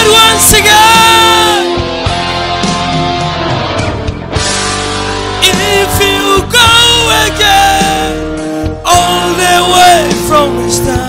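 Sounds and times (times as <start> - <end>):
rock backing music: 0.0 - 11.0
man singing long note: 5.4 - 8.2, 8.8 - 11.0.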